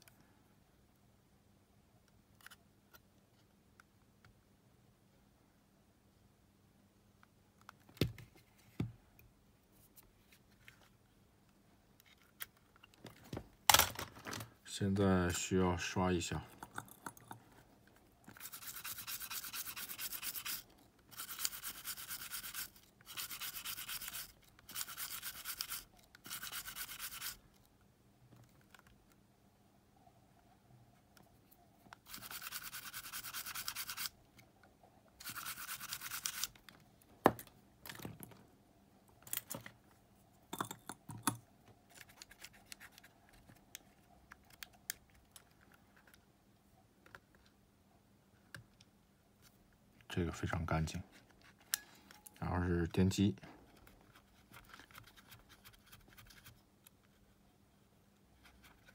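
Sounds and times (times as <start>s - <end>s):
cotton swab scrubbing: 18.3s - 27.4s, 32.0s - 34.1s, 35.2s - 36.5s.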